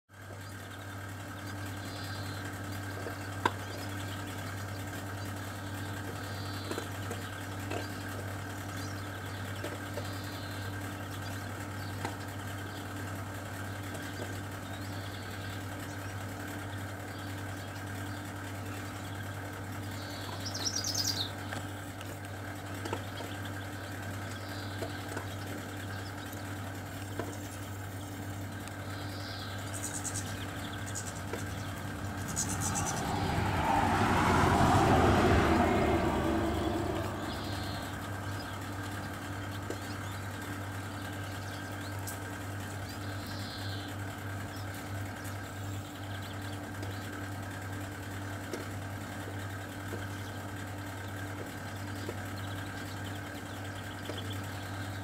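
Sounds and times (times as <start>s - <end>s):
low mechanical hum: 0.1s - 55.0s
finch calls: 0.4s - 13.0s, 16.7s - 21.5s, 22.9s - 33.0s, 37.2s - 47.2s.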